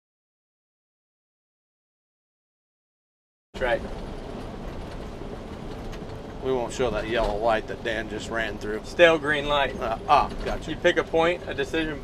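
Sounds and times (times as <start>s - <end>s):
truck engine hum: 3.6s - 12.0s
tyre noise on wet road: 3.6s - 12.0s.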